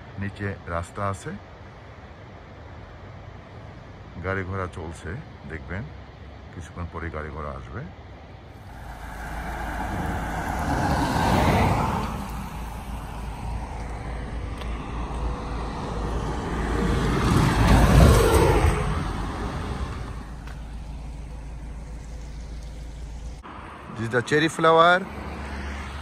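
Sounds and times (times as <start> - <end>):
truck passing with low rumble: 8.0 - 26.0
car passing: 8.5 - 26.0.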